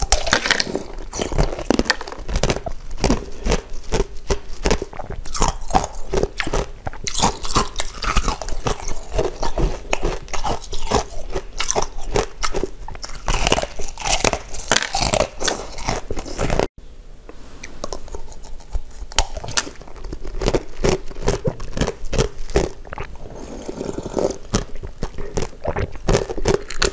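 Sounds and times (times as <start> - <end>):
crunching and chewing ice: 0.0 - 16.7, 17.8 - 26.9.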